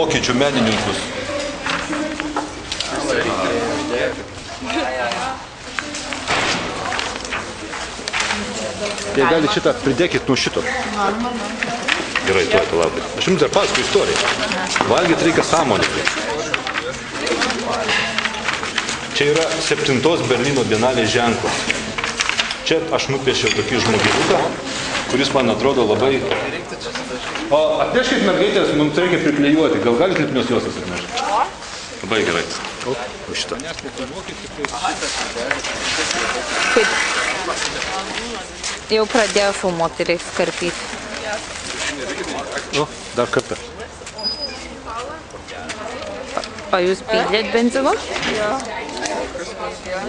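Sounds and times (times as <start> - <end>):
murmured voices: 0.0 - 50.0
people talking indistinctly: 0.0 - 50.0.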